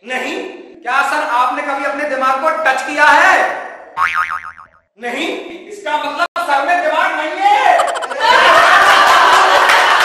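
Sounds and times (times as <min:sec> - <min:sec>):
comic boing sound effect: 0:04.0 - 0:04.8, 0:07.8 - 0:08.3.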